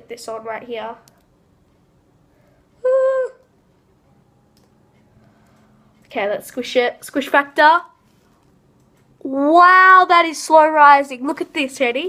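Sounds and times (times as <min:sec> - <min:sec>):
person humming high ooh: 0:02.8 - 0:03.5.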